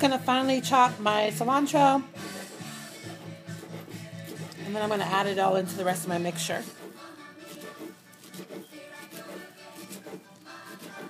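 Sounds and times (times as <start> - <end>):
faint background music: 0.0 - 11.0
knife chopping on cutting board: 2.2 - 11.0.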